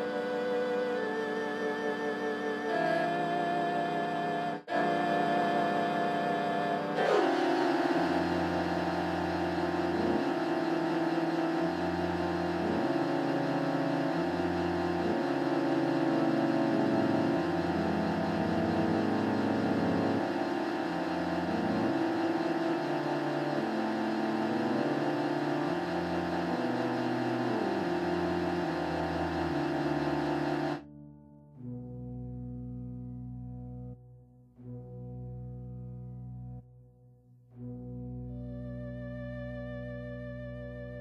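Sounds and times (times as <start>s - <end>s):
sustained high chord: 0.0s - 34.0s
stepping bass line: 7.0s - 30.8s.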